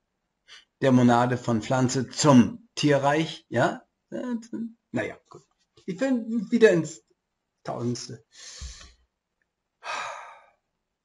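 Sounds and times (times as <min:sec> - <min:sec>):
man sighing: 0:08.4 - 0:08.9, 0:09.8 - 0:10.5.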